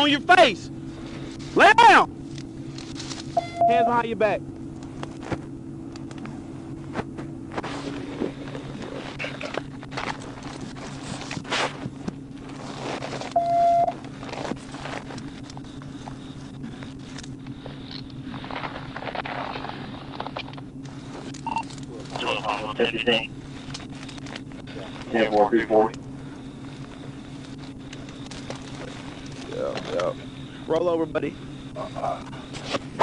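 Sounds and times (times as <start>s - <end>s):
idling car hum: 0.0s - 33.0s
short beep: 3.4s - 4.0s, 13.3s - 13.9s
clicks and rustles: 8.2s - 22.3s, 23.6s - 25.1s, 26.0s - 30.2s.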